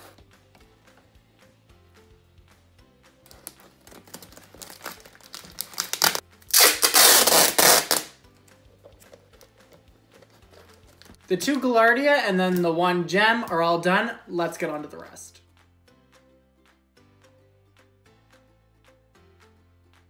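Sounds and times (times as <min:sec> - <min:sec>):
soft background music: 0:00.0 - 0:20.0
packing tape pulled off roll: 0:03.2 - 0:08.2.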